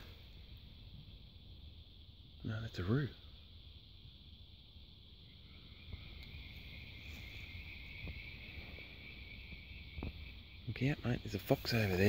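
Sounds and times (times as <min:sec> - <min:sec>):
insects trilling: 0:00.0 - 0:12.0
lower insect trill: 0:00.0 - 0:12.0.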